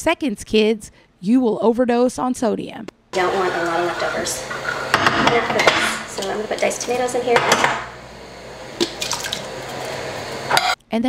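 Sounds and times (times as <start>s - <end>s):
tomatoes pouring into pot: 3.2s - 10.5s.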